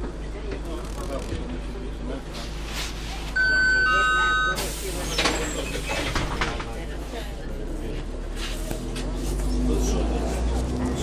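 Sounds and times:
bus rumble: 0.0 - 11.0
passenger chatter: 0.0 - 11.0
bus door warning beep: 3.4 - 6.1.

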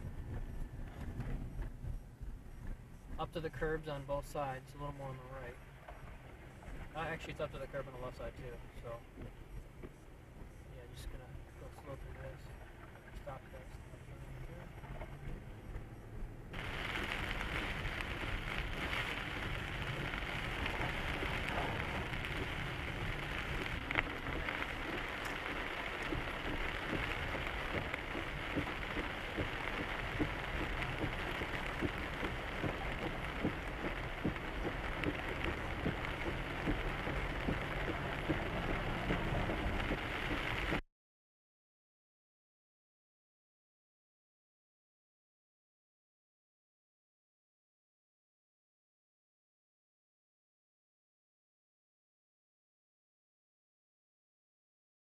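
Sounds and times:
rain on car windshield: 0.0 - 40.8.

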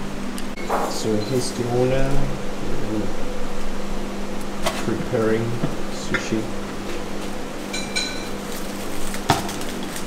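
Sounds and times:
ventilation hum: 0.0 - 10.0.

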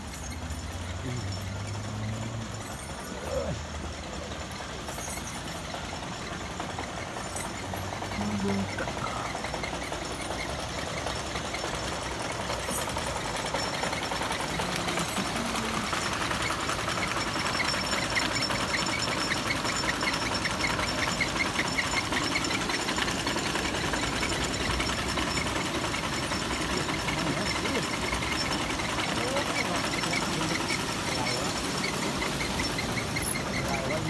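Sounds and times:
small engine clattering: 0.0 - 34.0.

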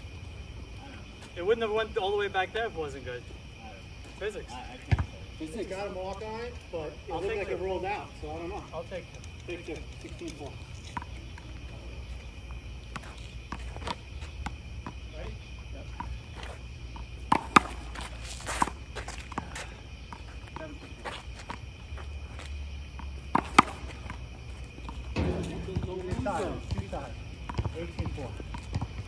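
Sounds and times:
sneaker steps and scuffs: 10.8 - 29.0.

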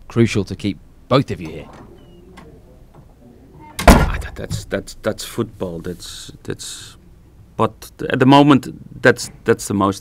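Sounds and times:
man speaking: 0.1 - 7.0.

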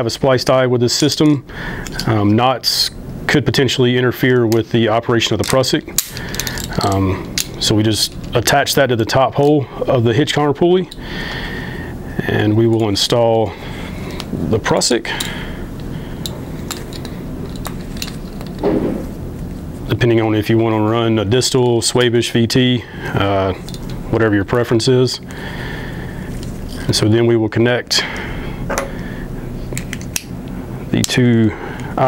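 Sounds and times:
metal carabiners clinking: 5.3 - 8.6, 16.2 - 18.6.

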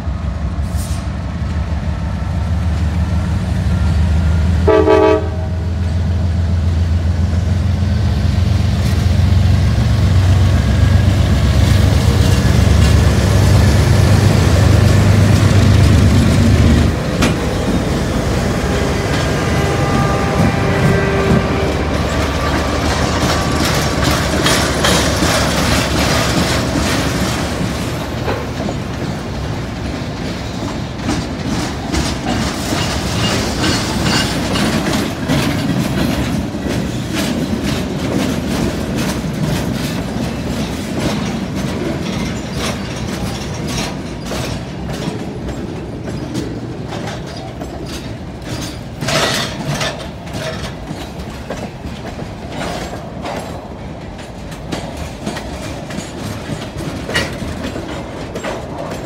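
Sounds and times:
freight train locomotives passing: 0.0 - 59.0
train wheels clattering over rail joints: 2.7 - 59.0.

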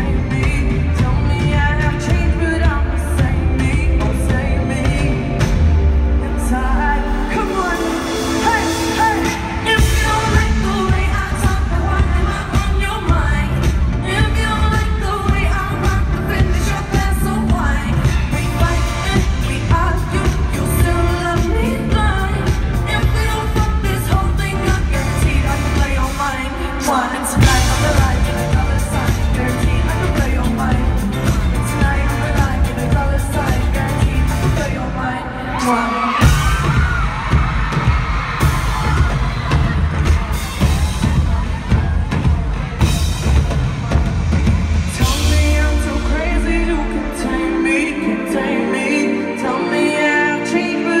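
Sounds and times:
woman singing into a microphone: 0.0 - 37.0, 45.0 - 51.0
pop band playing: 0.0 - 51.0.

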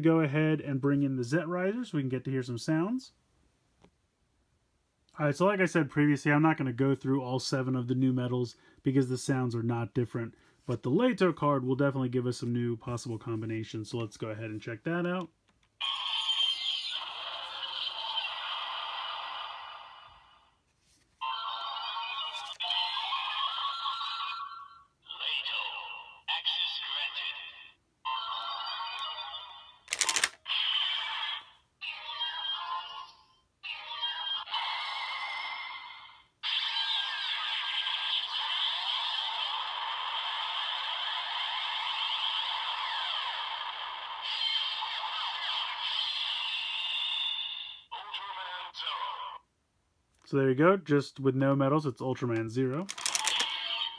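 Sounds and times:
toy electronic sound effects: 15.8 - 20.3, 21.2 - 49.4, 52.8 - 53.9
transformation music from toy: 15.8 - 20.3, 21.2 - 48.9, 52.8 - 53.9.

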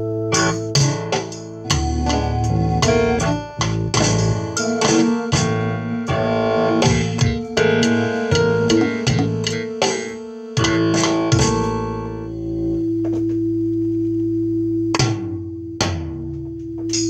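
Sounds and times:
keyboard instrument notes: 0.0 - 13.4.

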